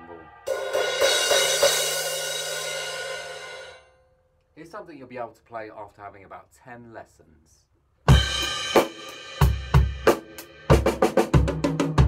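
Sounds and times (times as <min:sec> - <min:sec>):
crash cymbal ringing: 0:00.0 - 0:04.2.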